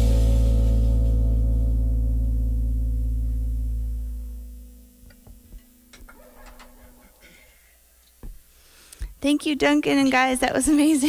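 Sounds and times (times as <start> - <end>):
sustained guitar notes ringing: 0.0 - 7.6
guitar handling clicks and taps: 5.0 - 7.2.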